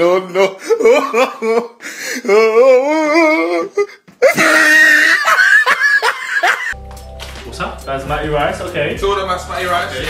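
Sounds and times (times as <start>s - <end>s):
man's wavering ohh: 2.2s - 5.2s
men laughing and hollering: 4.2s - 6.8s
background music with low notes: 6.8s - 10.0s.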